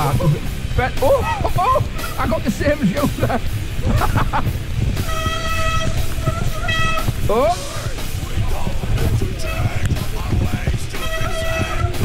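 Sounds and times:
tyres rumbling on trail: 0.0s - 12.0s
bike disc brakes squealing: 1.2s - 2.4s, 5.0s - 7.5s, 9.3s - 9.8s, 10.9s - 12.0s.

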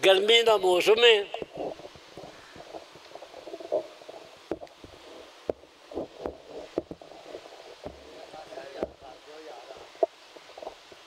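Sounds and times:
microphone handling knocks: 1.3s - 9.2s
dull rubbing noise: 1.4s - 11.0s.

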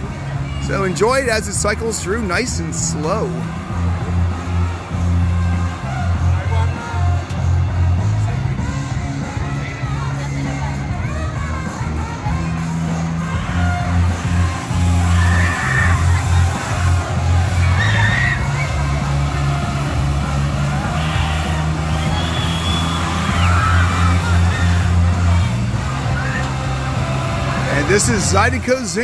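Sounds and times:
amusement ride machine hum: 0.0s - 29.0s
distant riders shouting: 0.0s - 29.0s.

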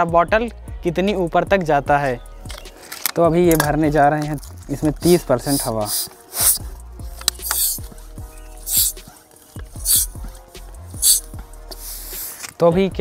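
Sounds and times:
background music: 0.0s - 13.0s
air pump hissing: 5.0s - 12.5s.

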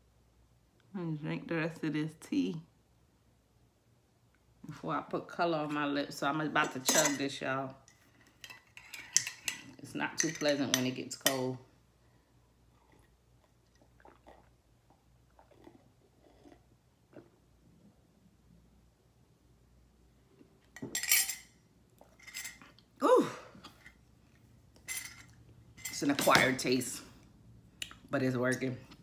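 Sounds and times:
metal spoon clinking tumbler: 20.8s - 21.6s.

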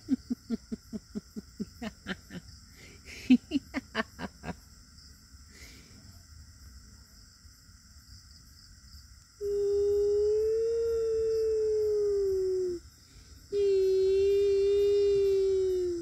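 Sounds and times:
long steady howl: 9.4s - 16.0s.

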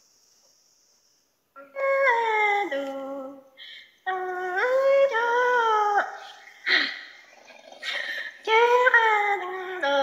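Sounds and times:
woman singing unaccompanied: 1.6s - 6.9s, 8.0s - 10.0s.

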